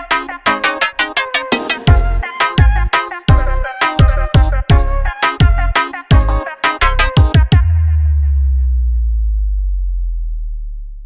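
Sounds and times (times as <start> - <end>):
deep sub-bass tone: 7.0 - 11.0.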